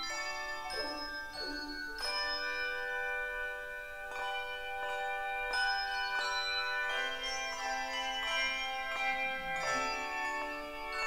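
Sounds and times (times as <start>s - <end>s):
handbell choir playing: 0.0s - 11.0s.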